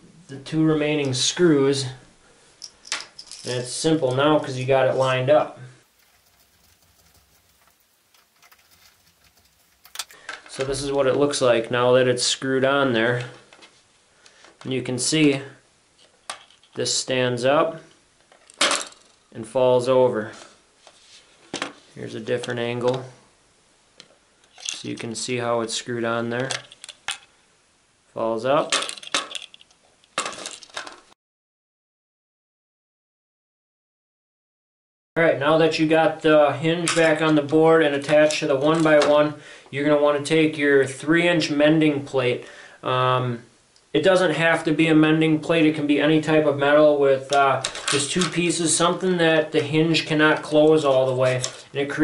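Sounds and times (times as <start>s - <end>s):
screwdriver ticks and scrapes: 6.0s - 10.2s.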